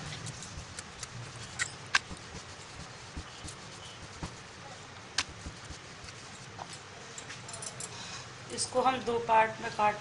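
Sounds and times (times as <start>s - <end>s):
rolling pin rolling dough: 0.0s - 6.8s.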